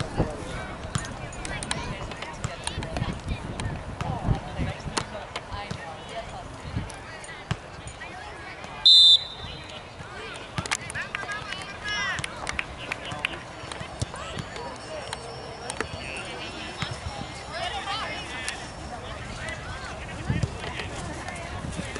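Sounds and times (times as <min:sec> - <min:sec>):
referee's whistle blast: 0:08.8 - 0:09.6.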